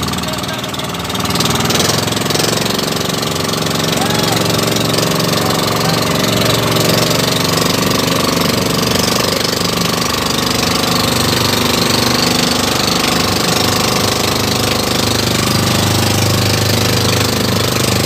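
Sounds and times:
boat engine running loud: 0.0s - 18.0s.

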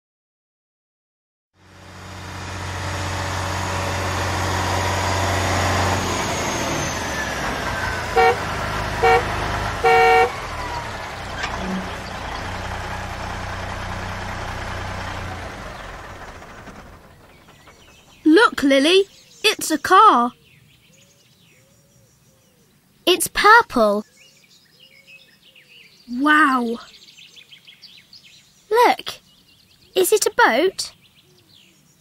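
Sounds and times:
car engine running: 1.6s - 18.6s
car horn toots: 7.8s - 10.9s.

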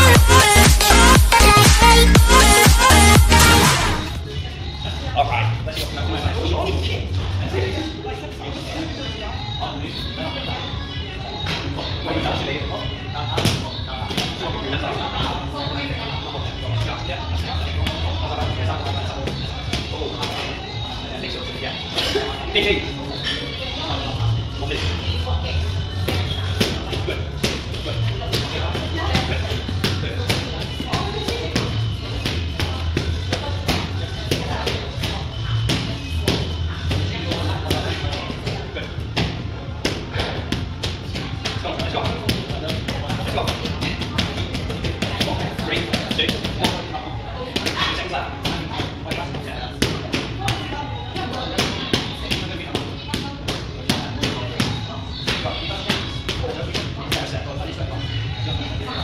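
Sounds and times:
music with steady beat: 0.0s - 4.2s.

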